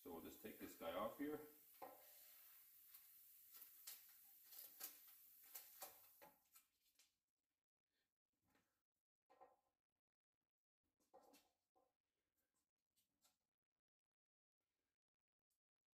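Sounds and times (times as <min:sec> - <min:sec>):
faint clicks and knocks of fittings: 0:01.7 - 0:07.1.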